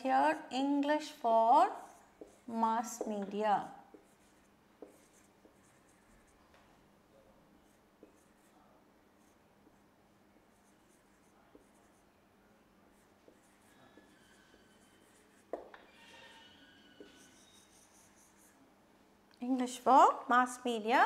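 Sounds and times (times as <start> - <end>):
marker pen writing on whiteboard: 0.2 - 6.7, 7.6 - 12.1, 12.9 - 18.6
pen tapping on board: 4.8 - 5.6, 15.5 - 15.8.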